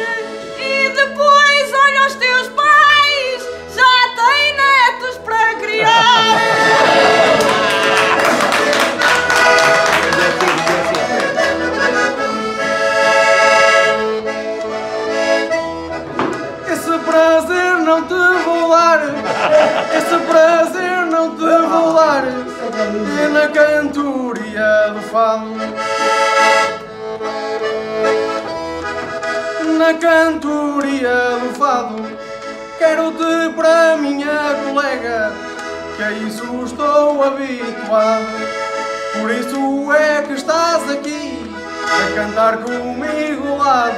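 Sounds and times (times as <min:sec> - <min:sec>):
button accordion melody: 0:00.0 - 0:43.9
person singing: 0:05.6 - 0:13.2, 0:16.5 - 0:25.8, 0:32.8 - 0:43.9.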